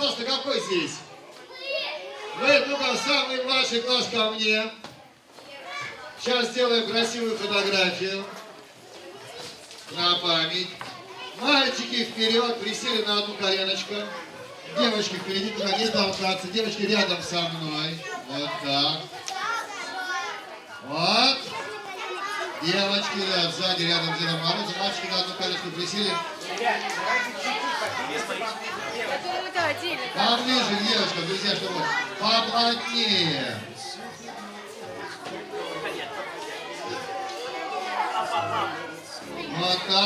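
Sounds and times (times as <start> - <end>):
children chattering and calling out: 0.0 - 40.0.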